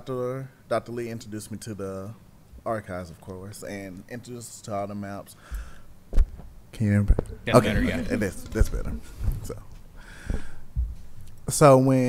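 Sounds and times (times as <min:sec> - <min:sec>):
microphone handling bumps: 0:05.5 - 0:11.2
person speaking: 0:07.0 - 0:09.8.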